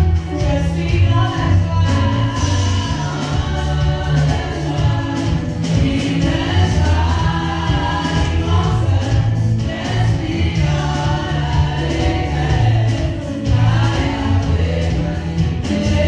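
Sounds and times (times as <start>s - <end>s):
choir singing gospel song: 0.0s - 16.0s
keyboard accompaniment: 0.0s - 16.0s
low bass line: 0.0s - 16.0s.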